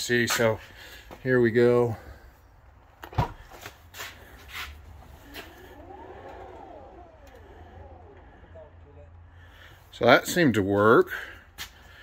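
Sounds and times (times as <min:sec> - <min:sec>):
door motor whining: 0:04.7 - 0:09.8.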